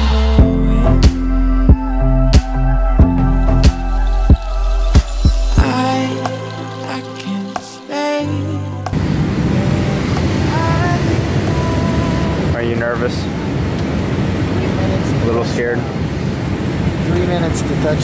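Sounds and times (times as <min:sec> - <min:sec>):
background music: 0:00.0 - 0:12.6
jet airliner cabin noise: 0:08.9 - 0:18.0.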